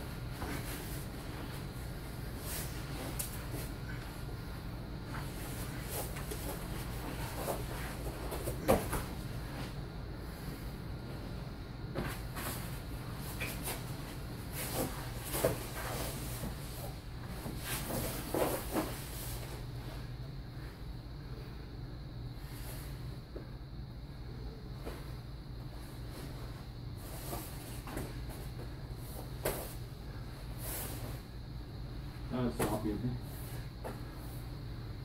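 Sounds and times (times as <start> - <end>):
bodies rustling and thudding on mats: 0.0 - 20.1, 24.8 - 31.8
steady low hum: 0.0 - 35.0.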